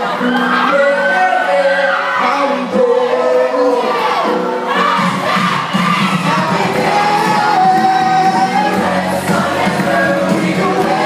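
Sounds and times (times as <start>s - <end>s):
person singing into a microphone: 0.0s - 4.6s, 6.2s - 11.0s
amplified live pop music: 0.0s - 11.0s
crowd singing and shouting along: 0.0s - 11.0s.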